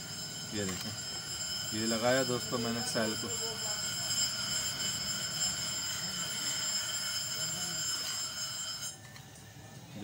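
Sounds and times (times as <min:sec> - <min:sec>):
high-pitched electronic whine: 0:00.0 - 0:10.0.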